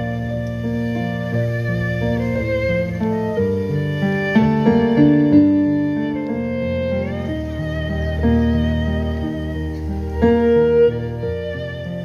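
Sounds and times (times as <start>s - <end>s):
keyboard accompaniment: 0.0s - 12.0s
violin melody: 0.0s - 12.0s.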